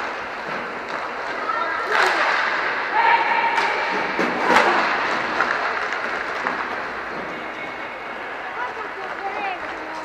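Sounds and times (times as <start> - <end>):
knocks of hockey sticks: 0.0 - 2.7, 3.5 - 7.5
skate wheels rolling on rink: 0.0 - 10.0.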